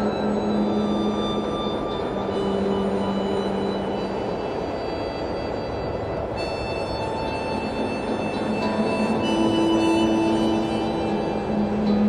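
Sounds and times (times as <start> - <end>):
steady rushing noise: 0.0 - 12.0
harmonica playing long notes: 5.3 - 12.0.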